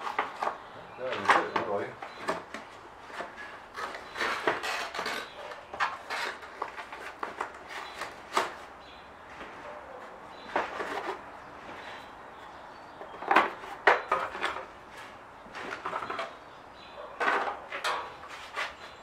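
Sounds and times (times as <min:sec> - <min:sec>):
cardboard rustling and scraping: 0:00.0 - 0:12.1, 0:13.0 - 0:16.4, 0:17.0 - 0:19.0.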